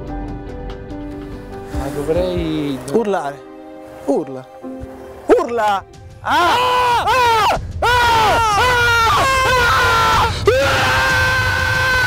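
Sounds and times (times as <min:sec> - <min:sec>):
men shouting: 0:05.3 - 0:12.0
long high yell: 0:06.2 - 0:12.0.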